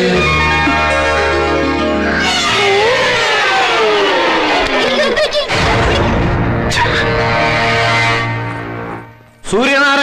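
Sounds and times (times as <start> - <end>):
wavering whining tone sliding down: 0.1 - 4.9.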